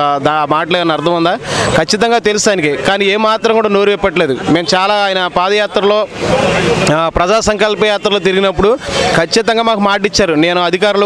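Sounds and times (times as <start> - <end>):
man speaking into microphone: 0.0 - 11.0
passing vehicle traffic noise: 0.0 - 11.0.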